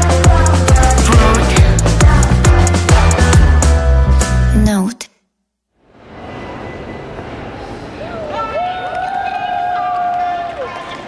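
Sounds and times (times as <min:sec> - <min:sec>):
hum of busy space: 0:05.7 - 0:11.0.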